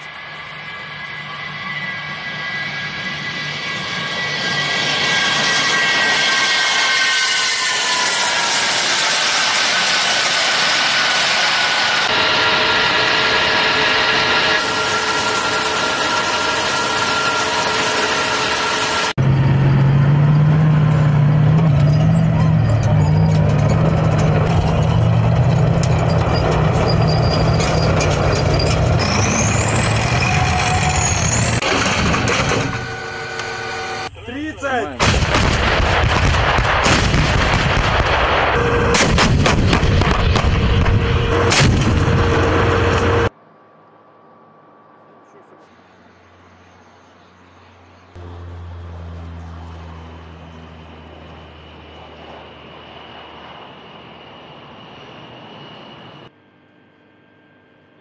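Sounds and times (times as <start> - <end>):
rising and falling whistle: 0.0 - 31.6, 48.3 - 56.3
jet engines whining: 0.0 - 56.8
heavy vehicle engine rumble: 9.9 - 43.4, 44.6 - 56.3.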